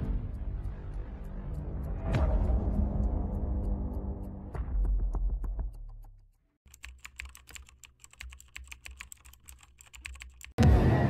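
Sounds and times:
rapid keyboard typing clicks: 6.7s - 10.6s.

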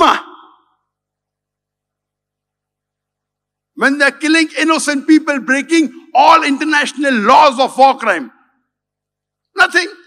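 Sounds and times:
man lecturing in raised voice: 0.0s - 0.6s, 3.8s - 8.4s, 9.5s - 10.0s.

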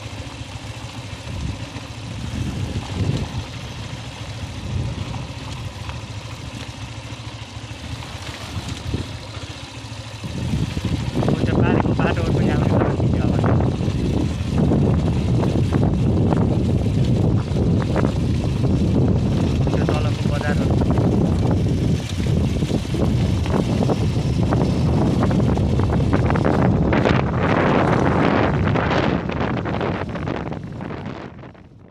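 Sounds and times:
wind buffeting microphone: 1.0s - 6.6s, 7.8s - 9.3s, 10.1s - 31.9s.

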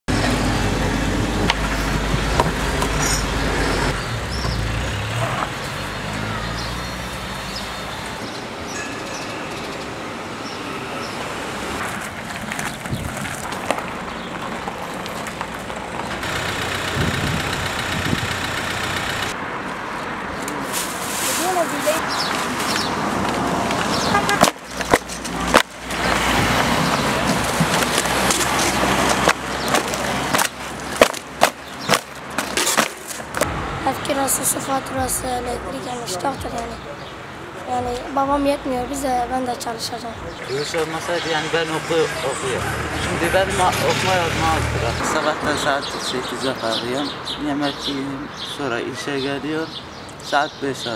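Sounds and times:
road traffic: 0.0s - 50.9s
low vehicle rumble: 11.9s - 20.6s.

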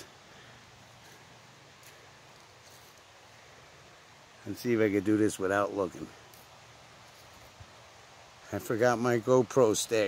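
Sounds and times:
footsteps crunching on dry leaves: 1.8s - 3.1s.

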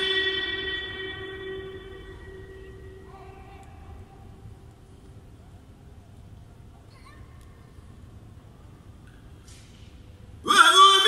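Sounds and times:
echo of recitation note: 0.0s - 3.9s, 10.4s - 11.0s
low room rumble: 0.0s - 11.0s.

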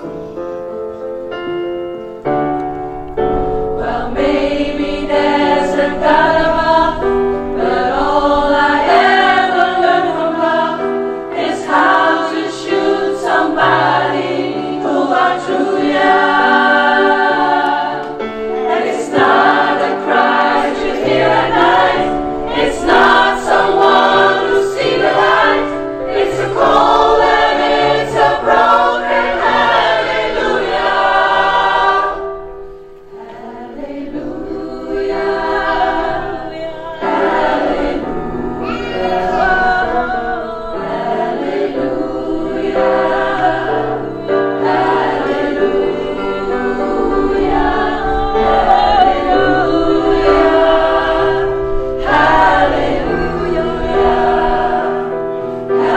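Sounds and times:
choir singing: 0.0s - 55.9s.

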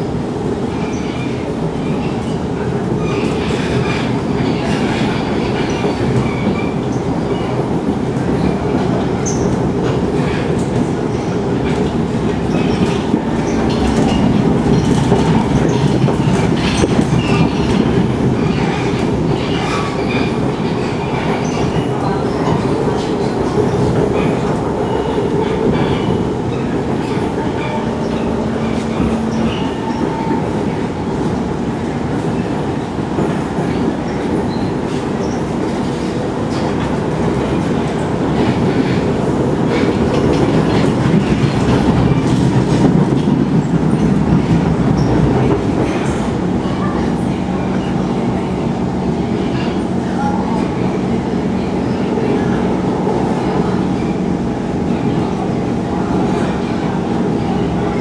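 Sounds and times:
train wheels on track: 0.0s - 58.0s.

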